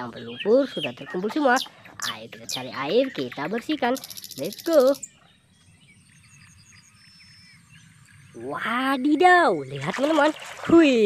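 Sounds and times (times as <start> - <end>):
faint outdoor background: 0.0 - 11.0
small high chirps: 3.8 - 8.2.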